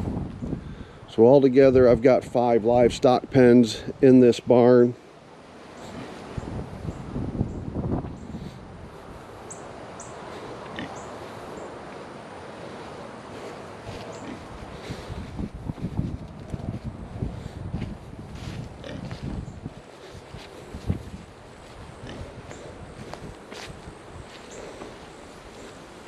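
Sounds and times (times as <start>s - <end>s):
wind on microphone: 0.0s - 1.0s, 5.9s - 9.6s, 13.4s - 25.5s
footsteps crunching on gravel: 17.7s - 25.9s.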